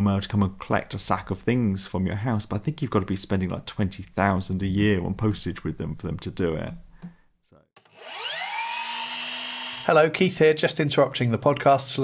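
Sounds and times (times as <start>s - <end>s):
rising whine sound effect: 8.0s - 9.9s.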